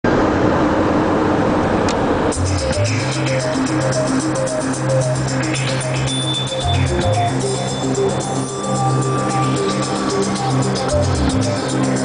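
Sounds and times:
car engine hum: 0.1s - 12.0s.

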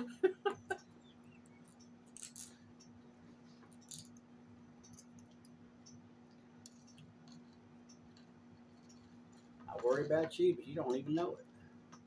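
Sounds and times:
laughter: 0.0s - 1.4s
steady low hum: 0.0s - 12.0s.

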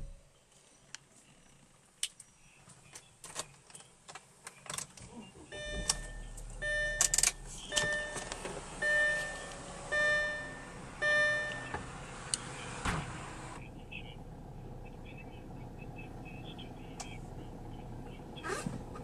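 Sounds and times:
car engine cranking and idling: 0.0s - 0.2s, 5.0s - 19.0s
dashboard warning chime: 5.5s - 11.8s
keys clicking in ignition: 5.7s - 8.4s.

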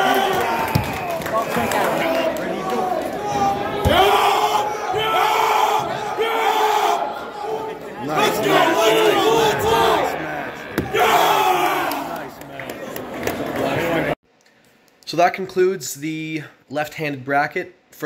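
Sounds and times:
crowd yelling and shouting: 0.0s - 14.2s.

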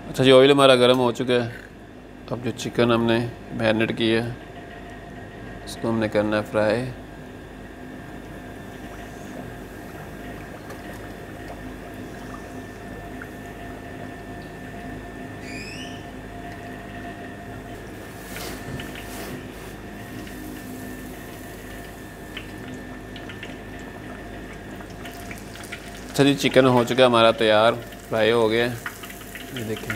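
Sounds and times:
constant background hum: 0.0s - 29.9s
chicken sizzling in hot oil: 27.4s - 29.9s.

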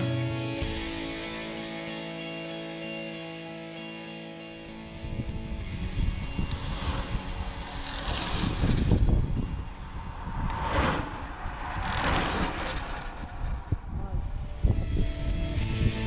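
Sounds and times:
vehicles passing on road: 4.6s - 16.0s
wind rumbling on microphone: 4.8s - 16.0s.

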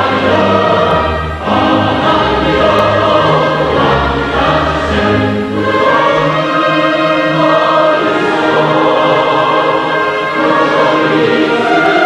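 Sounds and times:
choir singing held notes: 0.0s - 12.0s
orchestra accompaniment: 0.0s - 12.0s.

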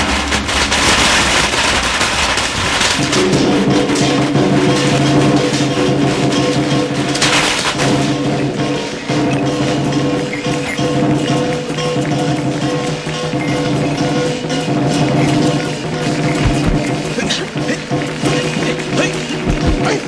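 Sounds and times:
loud cymbal crash: 0.0s - 19.8s
drum and percussion music: 0.0s - 20.0s.

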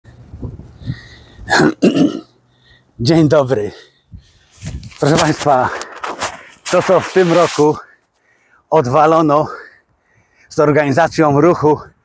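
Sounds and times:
man coughing: 1.5s - 2.4s
man speaking: 3.0s - 3.9s, 5.0s - 5.9s, 6.7s - 7.9s.

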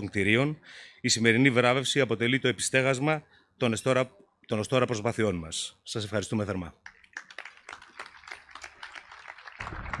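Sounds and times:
audience applauding: 6.8s - 10.0s.

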